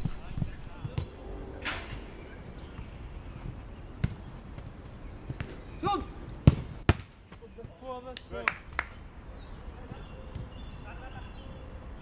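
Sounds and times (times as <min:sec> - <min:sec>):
football being kicked thuds: 0:04.0 - 0:04.7, 0:06.4 - 0:07.8.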